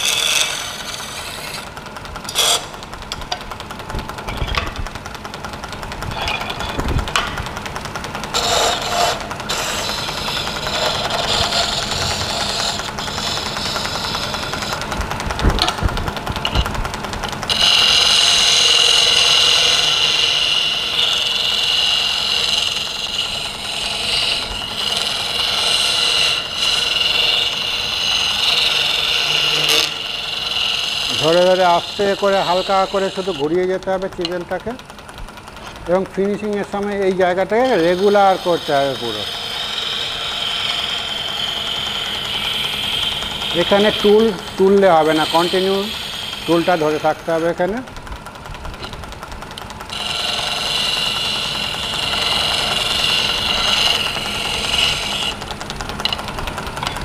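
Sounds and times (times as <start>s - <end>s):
wood lathe turning tool cutting: 0.0s - 57.0s.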